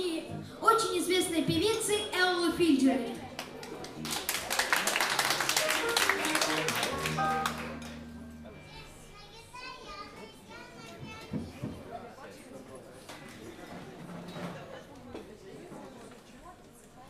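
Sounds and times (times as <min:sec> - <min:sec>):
audience applauding: 0:03.4 - 0:08.2
jazz band playing: 0:05.5 - 0:08.8.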